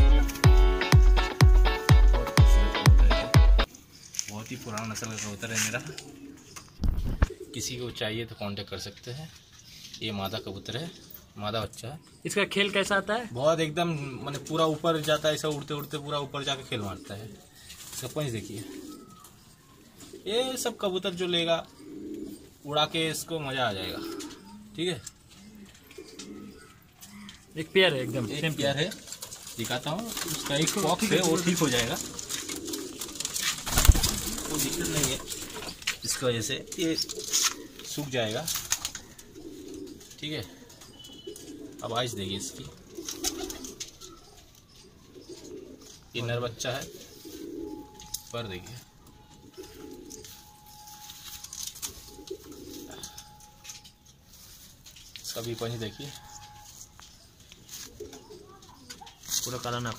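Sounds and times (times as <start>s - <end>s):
pigeons cooing: 5.4s - 8.4s, 10.0s - 11.4s, 13.8s - 59.9s.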